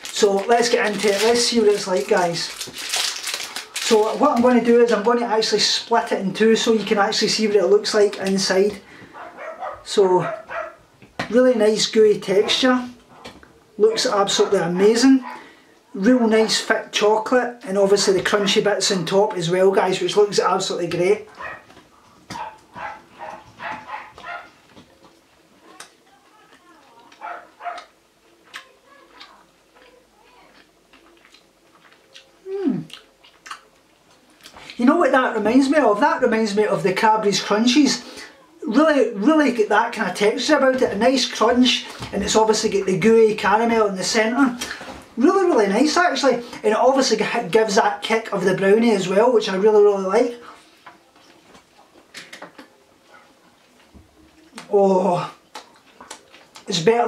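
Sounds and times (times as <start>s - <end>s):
chewing crunchy bar: 28.5s - 34.8s.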